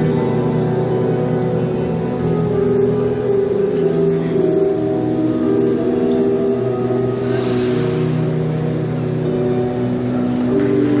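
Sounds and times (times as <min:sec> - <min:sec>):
music with sustained chords: 0:00.0 - 0:11.0.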